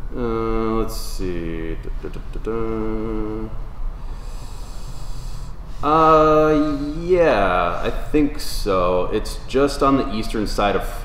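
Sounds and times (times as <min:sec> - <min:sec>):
man humming: 0:00.0 - 0:03.6, 0:04.2 - 0:07.9
soft breath hiss: 0:00.0 - 0:11.0.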